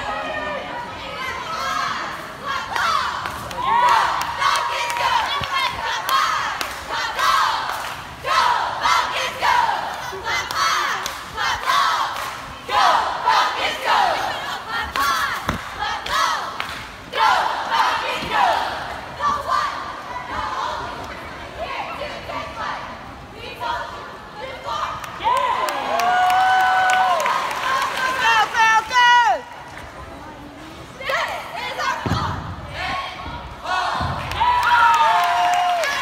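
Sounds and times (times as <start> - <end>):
cheerleaders shouting a cheer: 0.0 - 29.5, 30.9 - 36.0.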